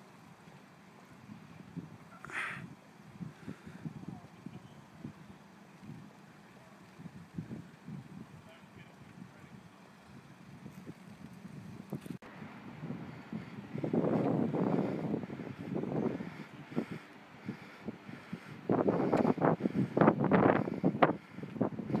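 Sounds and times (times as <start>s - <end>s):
wind buffeting microphone: 1.0s - 22.0s.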